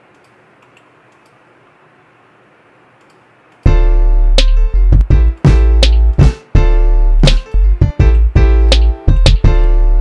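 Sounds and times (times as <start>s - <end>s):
faint room hiss: 0.0s - 10.0s
hip-hop beat: 3.6s - 10.0s
deep bass: 3.7s - 10.0s.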